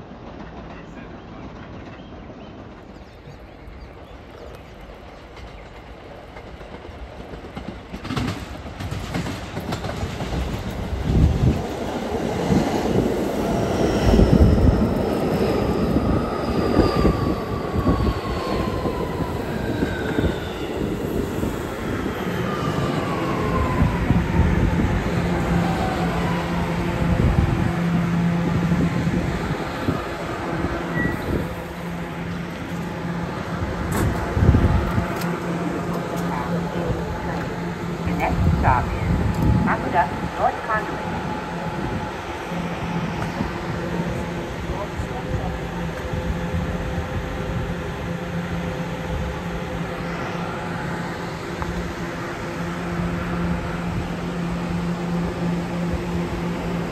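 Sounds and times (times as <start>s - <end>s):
train propulsion whine: 0.0s - 56.9s
train wheels clattering over rails: 4.3s - 13.2s
train doors opening clunk: 33.8s - 34.3s.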